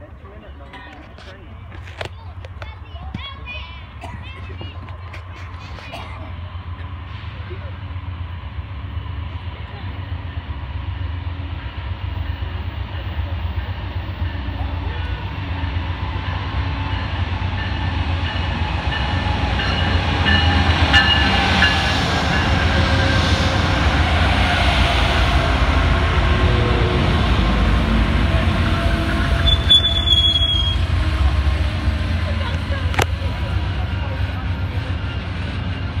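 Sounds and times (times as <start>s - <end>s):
diesel locomotive engine rumble: 0.0s - 36.0s
train cars rolling by: 0.0s - 36.0s
brake squeals: 28.9s - 30.9s.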